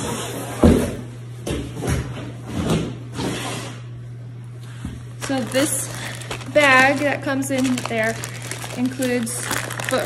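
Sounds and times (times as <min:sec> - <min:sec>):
packaging rustling and sliding: 0:05.2 - 0:10.0.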